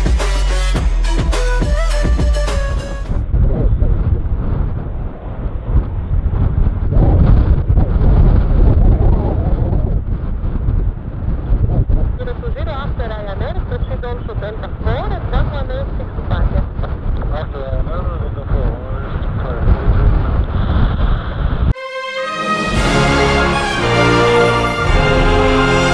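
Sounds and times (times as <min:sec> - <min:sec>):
wind buffeting microphone: 0:02.6 - 0:21.8
jet engines rumbling: 0:21.7 - 0:25.9.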